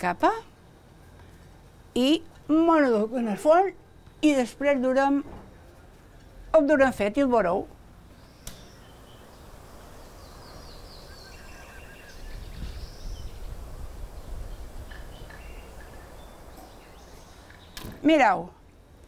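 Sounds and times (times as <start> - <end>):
small birds chirping: 8.1 - 18.4
single click: 8.4 - 8.7.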